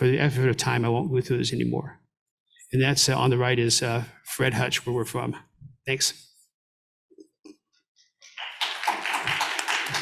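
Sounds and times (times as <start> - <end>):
audience applauding: 8.2 - 10.0.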